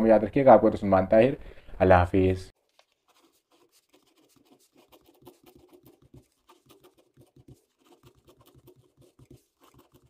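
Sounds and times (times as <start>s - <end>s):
ballpoint pen scratching on paper: 2.8s - 10.0s.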